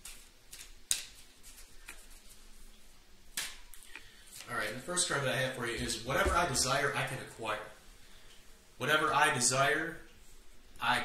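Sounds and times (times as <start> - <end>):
cards being shuffled: 0.0 - 2.6.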